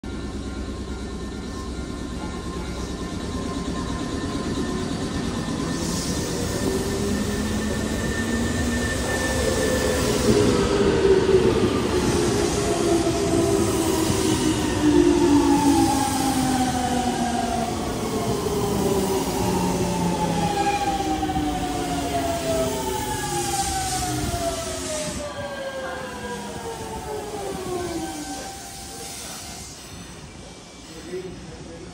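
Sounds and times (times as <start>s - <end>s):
train braking to a stop: 0.0s - 31.9s.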